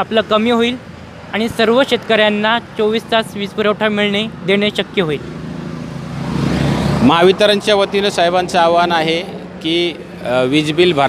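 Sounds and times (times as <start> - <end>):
vehicle passing on road: 0.0 - 11.0.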